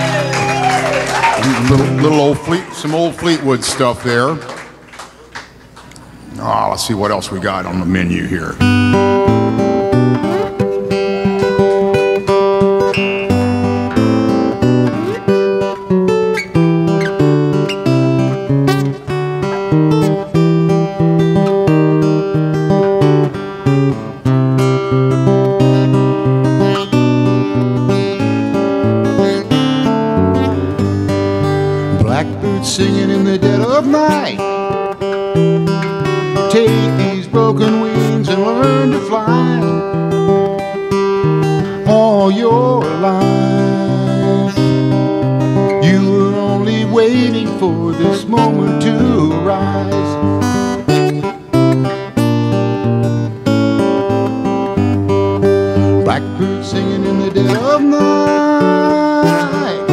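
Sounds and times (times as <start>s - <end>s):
fingerpicked acoustic guitar: 0.0s - 3.4s, 8.6s - 59.9s.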